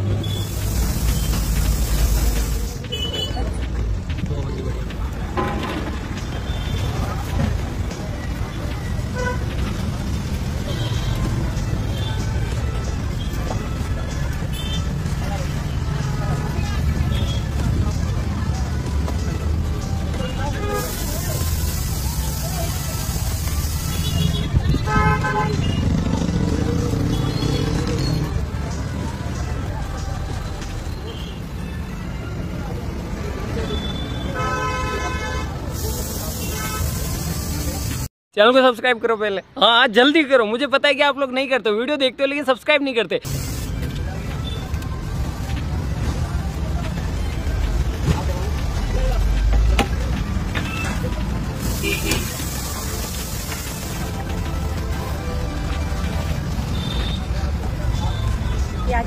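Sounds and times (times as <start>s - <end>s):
road traffic rumbling: 0.0s - 38.1s, 43.1s - 59.0s
vehicle horn honking: 33.7s - 35.6s, 56.7s - 57.4s.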